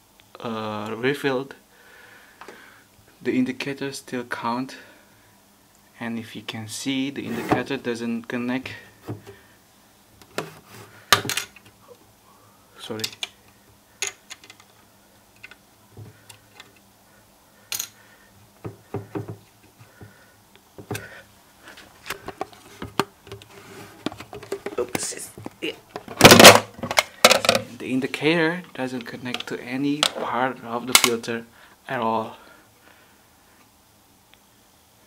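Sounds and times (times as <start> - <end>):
loud rubbing noise: 7.2 - 7.7.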